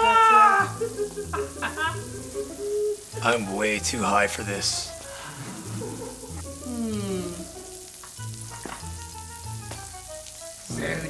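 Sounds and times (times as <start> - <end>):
crackling hiss: 0.0 - 11.0.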